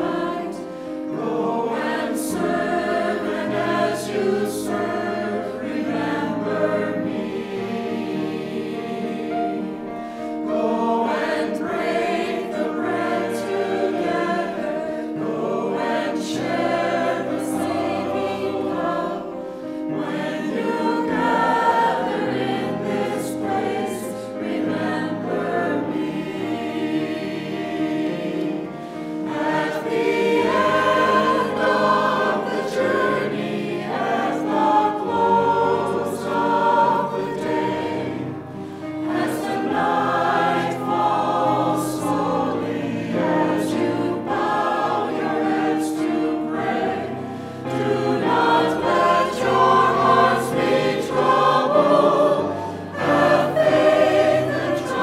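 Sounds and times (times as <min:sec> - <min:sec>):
church choir singing: 0:00.0 - 0:55.0.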